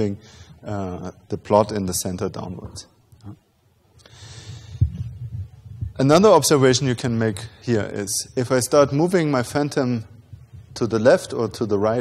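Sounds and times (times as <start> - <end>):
soft hiss: 0.0 - 12.0
dull low thumps: 4.5 - 6.0, 10.2 - 10.9
low rumble: 4.6 - 6.0.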